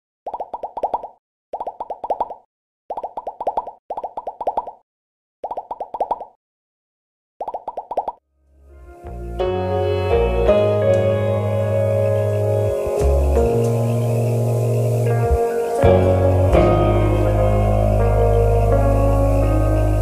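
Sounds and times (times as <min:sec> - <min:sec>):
bubbly cartoon popping: 0:00.3 - 0:04.8, 0:05.4 - 0:06.4, 0:07.4 - 0:08.2
ambient music with deep bass: 0:08.6 - 0:20.0.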